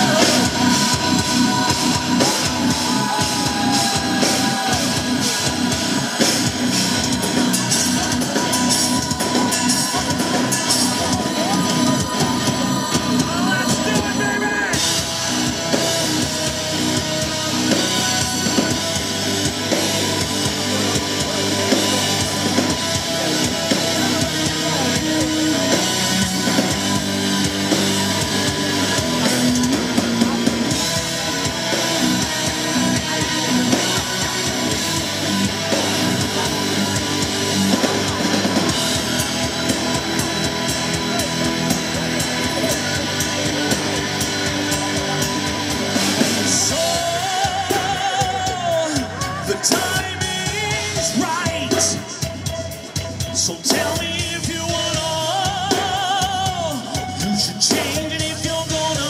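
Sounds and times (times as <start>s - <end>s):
live metal band playing: 0.0s - 59.0s.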